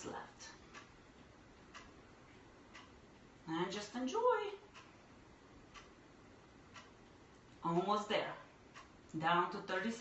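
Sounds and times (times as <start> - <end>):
clock ticking: 0.0 - 10.0.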